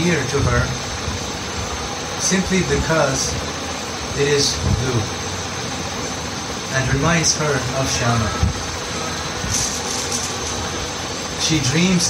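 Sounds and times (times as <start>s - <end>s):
even hiss: 0.0s - 12.0s.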